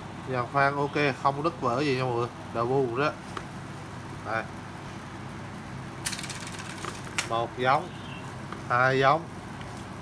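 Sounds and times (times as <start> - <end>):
fishing rod guides rattling: 6.0 - 7.4.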